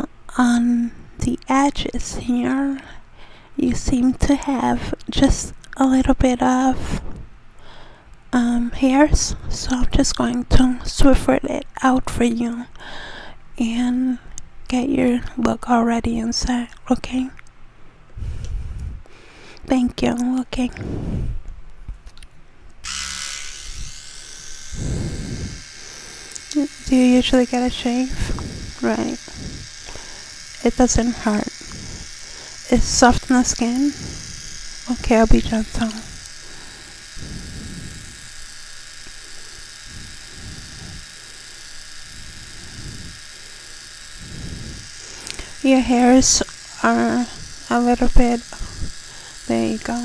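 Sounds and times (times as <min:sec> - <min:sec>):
electric trimmer buzzing: 0:22.8 - 0:50.0.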